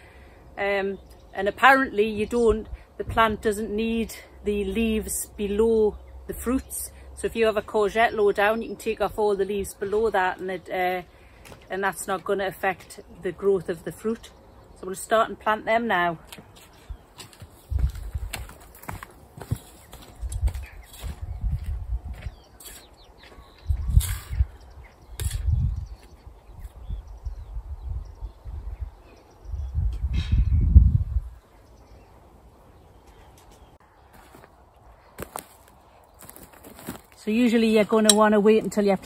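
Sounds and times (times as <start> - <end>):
trowel digging into soil: 23.9 - 24.5, 25.1 - 25.6.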